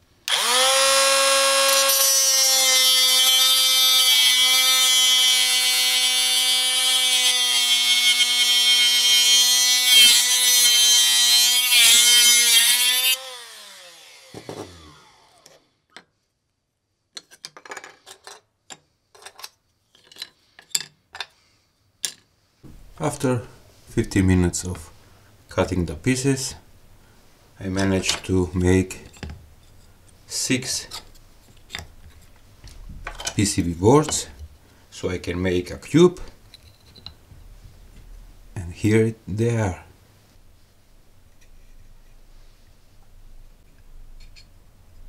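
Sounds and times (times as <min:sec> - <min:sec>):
angle grinder whining: 0:00.3 - 0:15.7.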